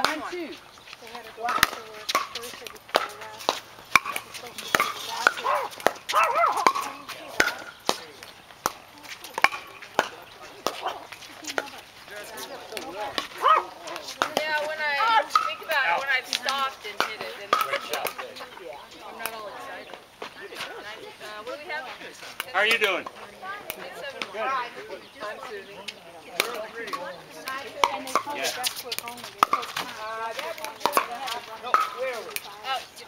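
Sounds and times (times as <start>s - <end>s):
paddles hitting plastic ball: 1.4s - 10.8s, 12.7s - 18.3s, 26.4s - 32.5s
ball bouncing on hard court: 1.4s - 11.8s, 12.7s - 18.3s, 26.4s - 32.6s.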